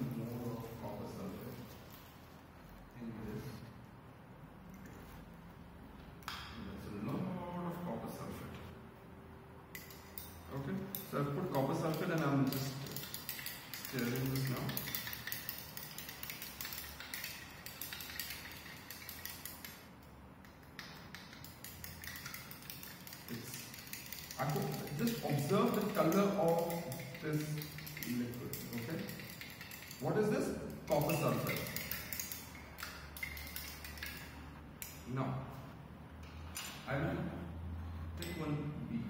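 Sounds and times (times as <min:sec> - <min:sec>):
stirring rod clinking in glass beaker: 0:09.7 - 0:35.1.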